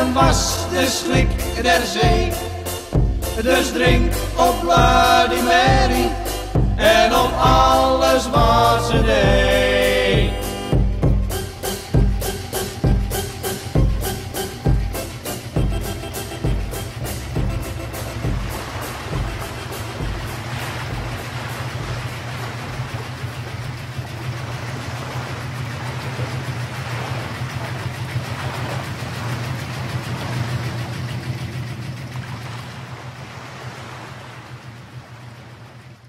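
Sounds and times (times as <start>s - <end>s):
boat engine running: 0.0s - 36.0s
water rushing along hull: 0.0s - 36.0s.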